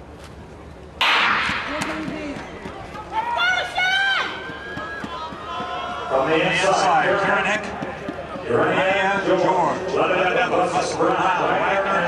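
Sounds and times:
starting pistol bang: 0:01.0 - 0:02.0
high voices shouting: 0:01.7 - 0:06.9
spectators cheering: 0:01.7 - 0:07.2.

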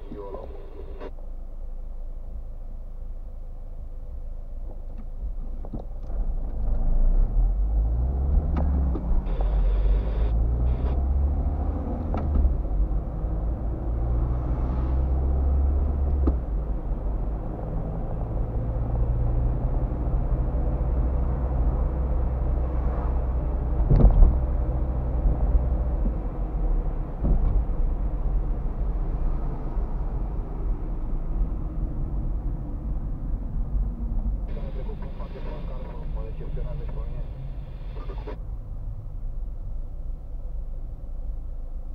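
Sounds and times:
car engine accelerating: 0:06.1 - 0:39.0.

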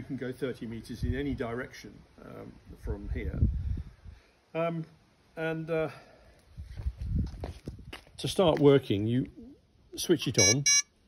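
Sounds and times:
footsteps on stone paving: 0:06.6 - 0:08.8.

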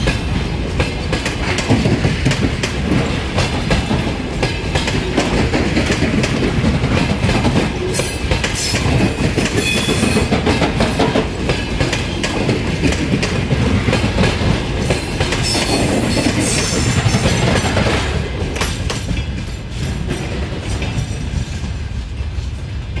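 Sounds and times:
train wheels clattering over rail joints: 0:00.0 - 0:23.0.

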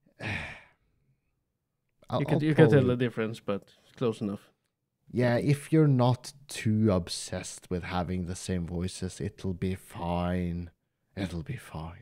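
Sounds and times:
man sighing: 0:00.2 - 0:00.8.

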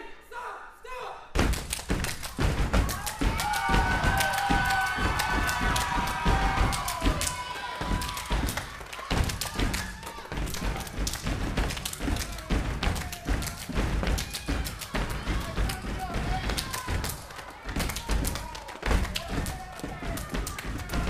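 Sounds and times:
rhythmic foot stomps and claps: 0:01.4 - 0:21.0
voices calling out and cheering: 0:02.3 - 0:21.0.

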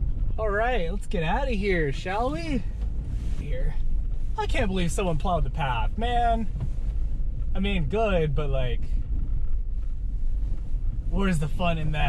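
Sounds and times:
car driving on snowy road: 0:00.0 - 0:12.0.

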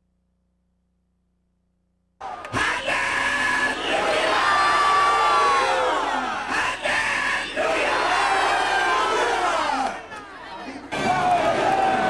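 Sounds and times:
crowd of worshippers calling out: 0:02.2 - 0:12.0.

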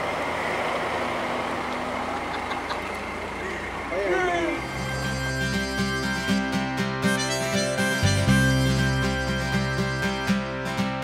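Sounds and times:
car running: 0:00.0 - 0:11.0
street noise: 0:00.0 - 0:11.0
people's voices: 0:01.7 - 0:04.9
background music: 0:04.6 - 0:11.0.

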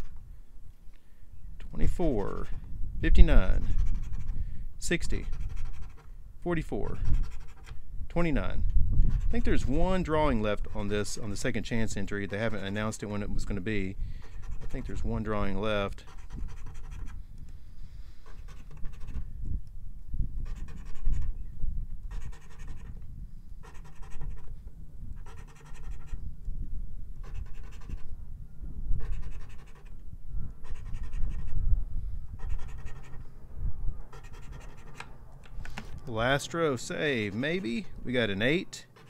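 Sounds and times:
coin scratching lottery ticket: 0:03.7 - 0:06.0, 0:07.0 - 0:07.7, 0:14.3 - 0:15.2, 0:16.0 - 0:17.2, 0:20.4 - 0:21.3, 0:22.1 - 0:23.0, 0:23.6 - 0:24.4, 0:25.2 - 0:26.2, 0:27.2 - 0:28.1, 0:29.0 - 0:30.0, 0:30.6 - 0:31.5, 0:32.4 - 0:33.2, 0:34.1 - 0:35.0, 0:37.0 - 0:38.0.

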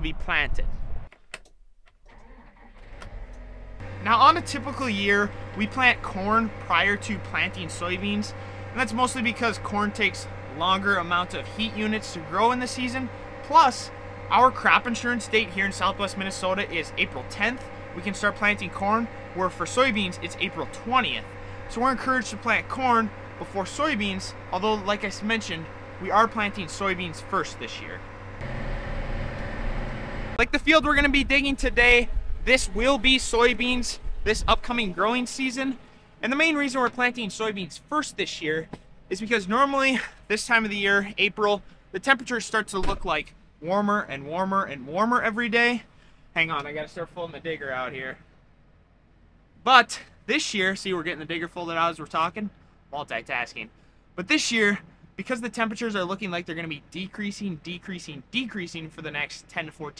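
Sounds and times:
tractor diesel engine starting: 0:02.0 - 0:31.1.

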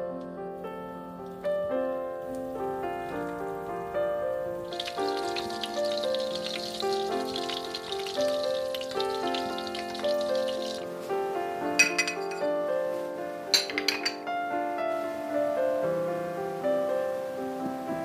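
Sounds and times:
gentle piano music: 0:00.0 - 0:18.0
patties sizzling in hot oil: 0:04.6 - 0:11.1
ceramic dishes clinking: 0:11.7 - 0:12.5, 0:13.5 - 0:14.3.

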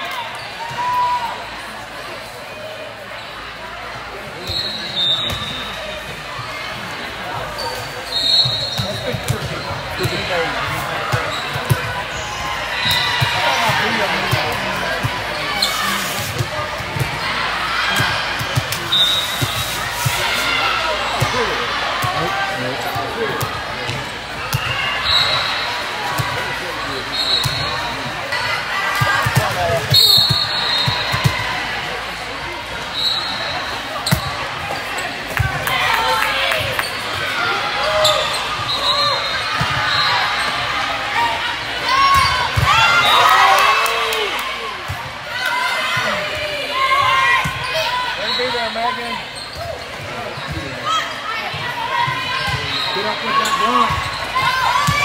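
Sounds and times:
sneakers squeaking on court: 0:04.4 - 0:06.5, 0:07.4 - 0:17.3, 0:27.0 - 0:28.0, 0:32.9 - 0:35.6, 0:47.4 - 0:51.6, 0:52.3 - 0:55.0.

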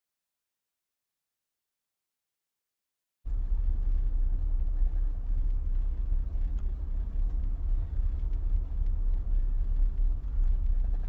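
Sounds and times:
faint ticks: 0:03.3 - 0:11.0
steady low rumble: 0:03.3 - 0:11.0.

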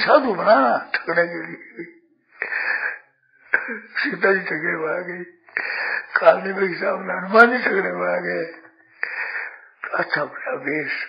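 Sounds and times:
man speaking: 0:00.0 - 0:02.9, 0:03.6 - 0:11.0
man breathing in: 0:02.3 - 0:03.2, 0:05.5 - 0:06.2, 0:08.9 - 0:09.8.

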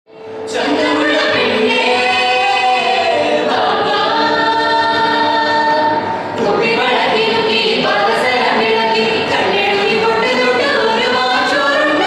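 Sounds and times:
choir singing in harmony: 0:00.2 - 0:12.0.

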